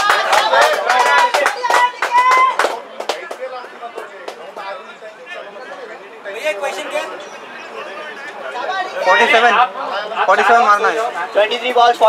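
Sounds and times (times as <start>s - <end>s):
men calling out and chattering: 0.0s - 12.0s.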